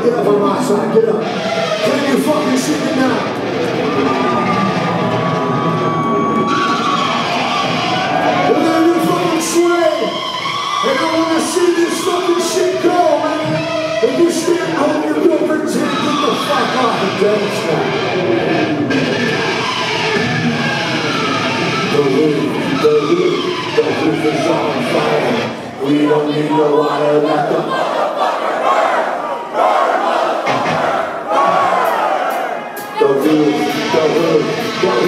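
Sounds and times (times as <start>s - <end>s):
distorted electric guitars: 0.0s - 25.9s, 32.8s - 35.0s
live amplified band music: 0.0s - 26.3s, 30.1s - 35.0s
room noise: 0.0s - 35.0s
drums: 0.1s - 25.8s, 30.3s - 35.0s.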